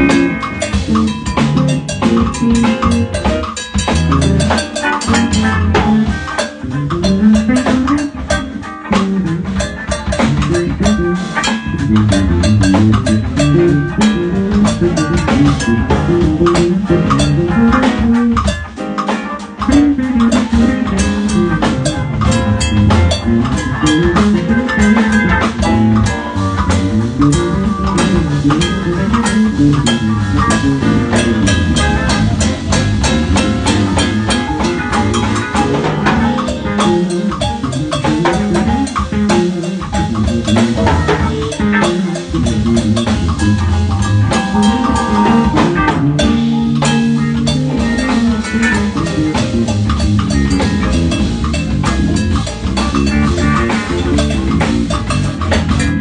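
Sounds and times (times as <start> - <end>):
drum kit and percussion: 0.0 - 56.0
electric bass line: 0.0 - 56.0.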